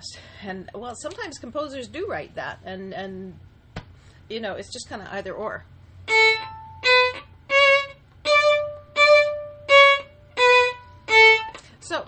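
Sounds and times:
violin bowed staccato notes: 0:06.1 - 0:11.7.

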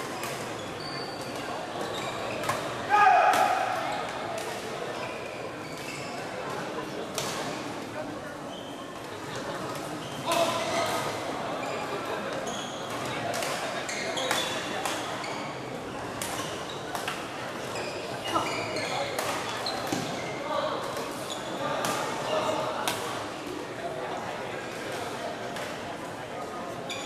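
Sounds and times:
hubbub of voices: 0:00.0 - 0:27.0
shoes squeaking on court floor: 0:00.1 - 0:02.8, 0:05.0 - 0:06.6, 0:09.7 - 0:17.0, 0:17.6 - 0:22.6.

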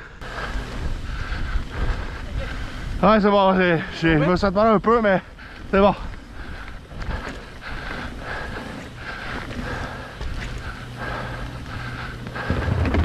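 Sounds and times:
bike tyre noise on gravel: 0:00.2 - 0:13.0
low rumble: 0:11.0 - 0:13.0.

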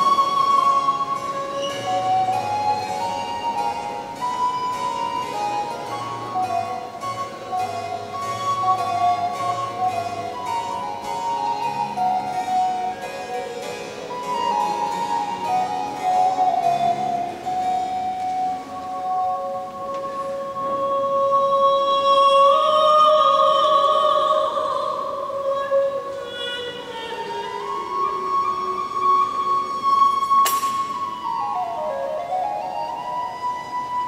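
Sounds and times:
plucked harpsichord accompaniment: 0:00.0 - 0:20.6
flute melody with held notes: 0:00.0 - 0:34.0.

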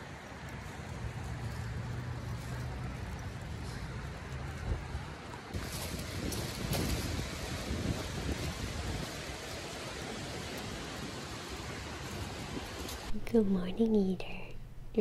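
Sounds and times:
wind buffeting microphone: 0:03.0 - 0:13.2.

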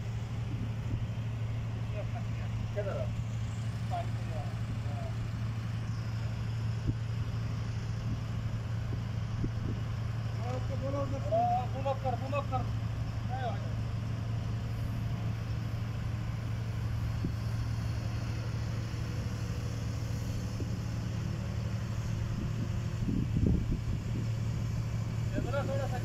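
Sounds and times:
diesel engine humming: 0:00.0 - 0:26.0.

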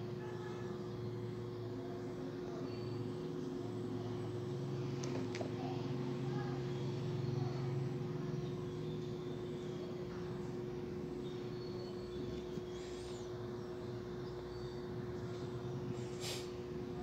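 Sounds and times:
steady low hum with mid tone: 0:00.0 - 0:17.0.

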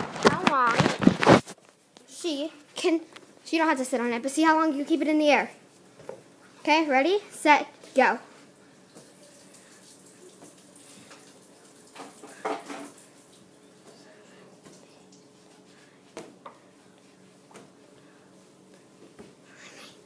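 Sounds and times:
faint room hiss: 0:00.0 - 0:20.0.

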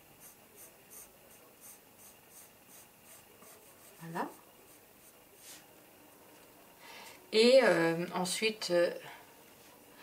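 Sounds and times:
pencil scratching on paper: 0:00.2 - 0:05.6.

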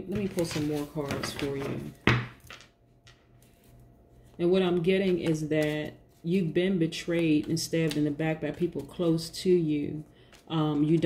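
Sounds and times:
card deck knocking on wooden table: 0:01.2 - 0:02.7.

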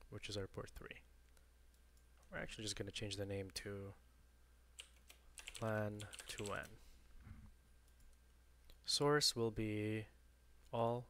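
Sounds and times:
person speaking: 0:02.2 - 0:04.0, 0:05.4 - 0:07.0
computer keyboard and mouse clicks: 0:04.8 - 0:06.7.

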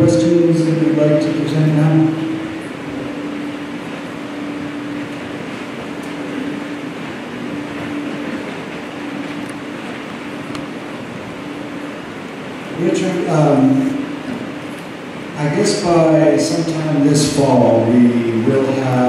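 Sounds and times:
low mechanical hum: 0:00.0 - 0:19.0.

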